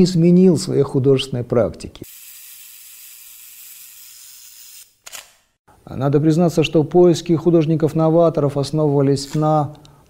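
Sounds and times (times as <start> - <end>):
camera shutter burst: 2.1 - 5.5.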